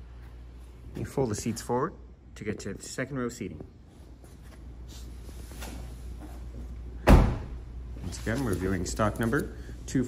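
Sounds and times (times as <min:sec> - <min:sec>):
faint rustling and handling noise: 0:03.4 - 0:06.8, 0:07.9 - 0:10.0.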